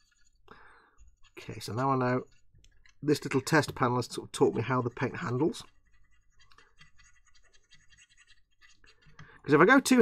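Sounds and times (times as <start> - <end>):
brush scratching on plastic: 0.0 - 10.0.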